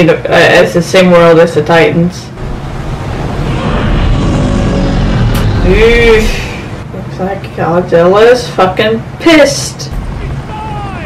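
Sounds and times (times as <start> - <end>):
deep rumble: 2.3 - 7.0.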